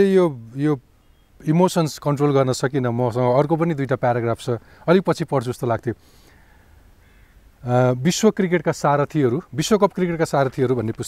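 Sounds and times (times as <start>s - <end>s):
man talking: 0.0s - 6.0s, 7.6s - 11.0s
faint outdoor background: 0.0s - 11.0s
drawn-out bird call: 6.0s - 7.6s.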